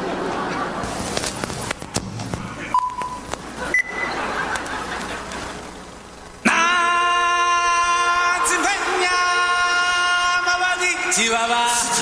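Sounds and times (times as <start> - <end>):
background noise: 0.0 - 12.0
short beeps: 2.7 - 4.2
loud singing voice: 6.4 - 12.0.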